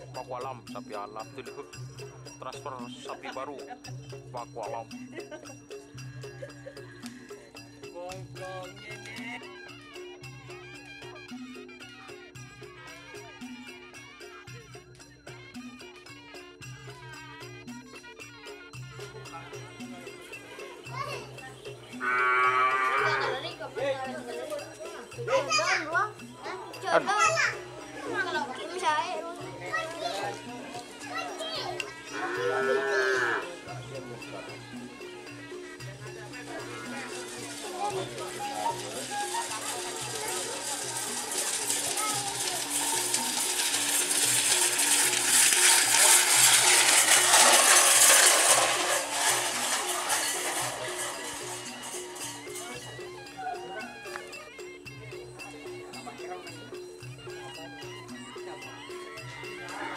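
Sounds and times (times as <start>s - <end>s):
music with steady beat: 0.0s - 59.9s
rushing jingling of galloping bulls: 0.0s - 59.9s
bull lowing: 22.0s - 23.4s, 32.1s - 33.6s
rising and falling bull calls: 22.0s - 23.4s, 32.1s - 33.6s.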